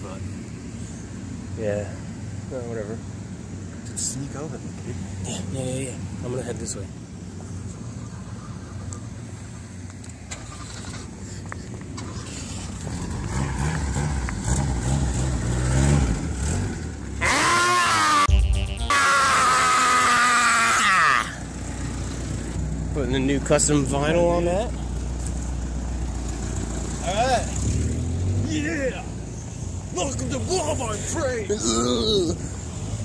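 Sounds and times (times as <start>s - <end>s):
loud screaming: 17.2s - 18.3s, 18.9s - 21.5s
car engine running: 20.9s - 27.9s.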